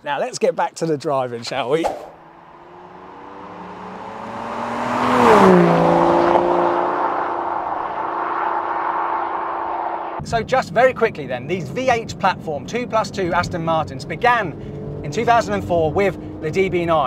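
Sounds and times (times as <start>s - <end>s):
car engine drive-by: 1.8s - 10.2s.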